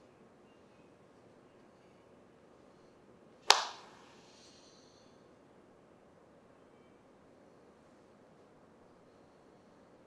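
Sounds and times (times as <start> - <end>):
hand clap with echo: 3.5 - 4.0.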